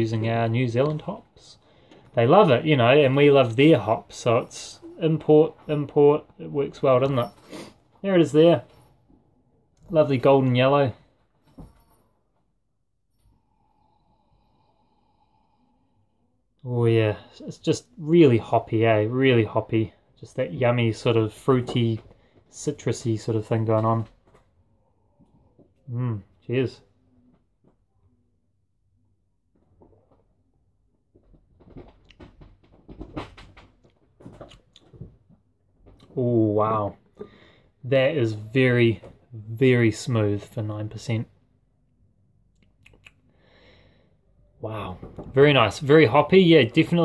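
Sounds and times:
lip smacks: 0:42.5 - 0:43.2.

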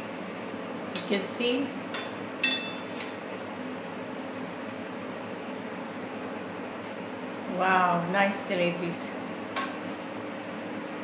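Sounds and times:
metal tongs clinking: 0:02.0 - 0:03.1.

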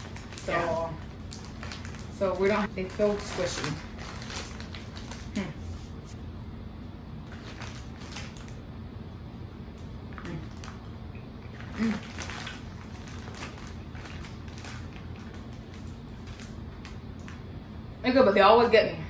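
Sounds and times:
room hum: 0:00.0 - 0:19.0.

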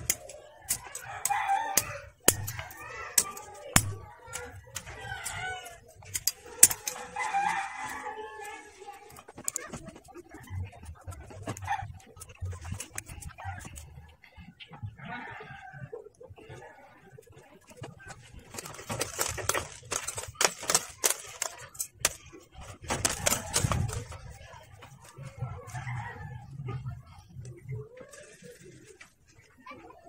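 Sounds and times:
side cutters snipping plastic: 0:18.6 - 0:22.3.

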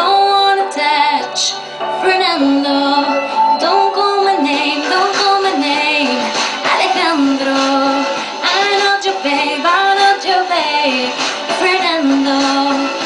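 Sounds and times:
backing music: 0:00.0 - 0:13.0
woman singing a pop song: 0:00.0 - 0:13.0.

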